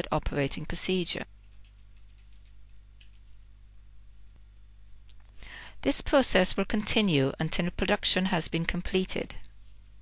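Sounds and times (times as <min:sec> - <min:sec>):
person speaking: 0:00.0 - 0:01.3, 0:05.8 - 0:09.5
low faint hum: 0:00.0 - 0:10.0
person breathing in: 0:05.4 - 0:05.8.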